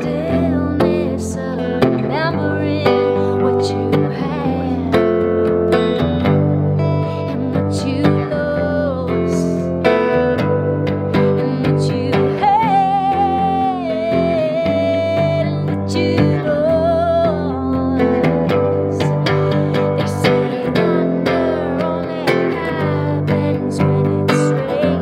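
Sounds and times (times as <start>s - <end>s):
electric guitar strumming chords: 0.0s - 25.0s.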